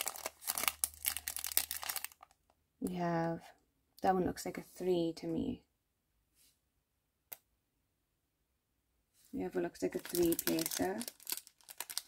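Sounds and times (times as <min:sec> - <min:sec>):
plastic bag crinkling: 0:00.0 - 0:02.4, 0:09.8 - 0:12.0.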